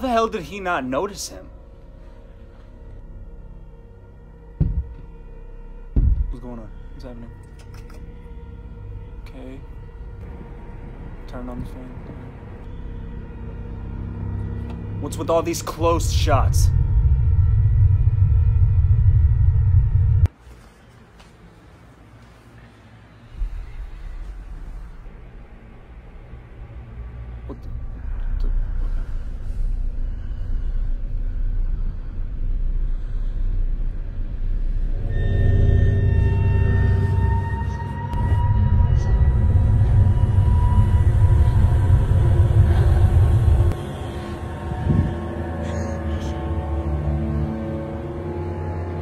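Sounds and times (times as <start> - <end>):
low suspense drone: 0.0 - 20.3, 23.1 - 49.0.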